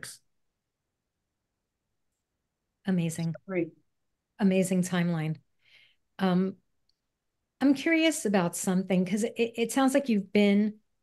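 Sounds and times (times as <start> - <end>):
woman speaking: 2.8 - 3.8, 4.4 - 5.4, 7.6 - 10.8.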